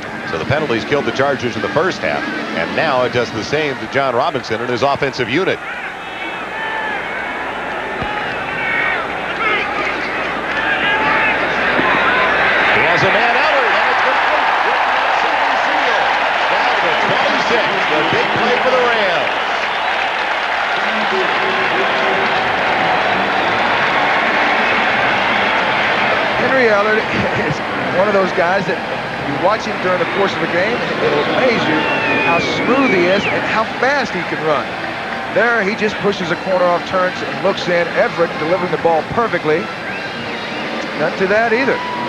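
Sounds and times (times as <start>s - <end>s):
stadium crowd noise: 0.0s - 42.0s.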